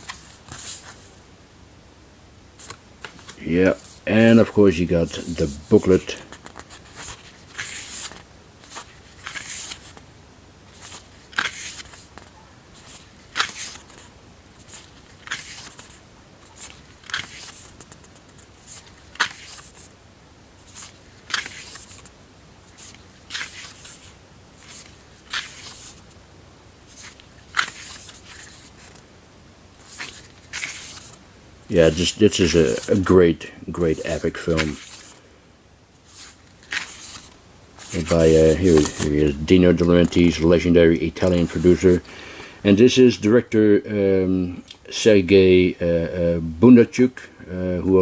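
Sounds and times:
booklet pages turning: 0.0s - 1.2s, 2.6s - 10.1s, 10.7s - 19.9s, 20.6s - 22.1s, 22.7s - 26.2s, 26.8s - 29.0s, 29.8s - 35.3s, 36.0s - 42.1s.

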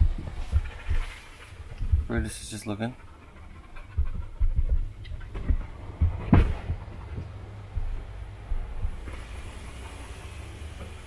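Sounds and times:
low thuds: 0.0s - 2.4s, 3.4s - 9.3s
dog panting: 0.1s - 9.1s
loud knock: 4.5s - 6.9s
car wash rumble: 5.6s - 11.0s
water spraying hiss: 9.0s - 11.0s.

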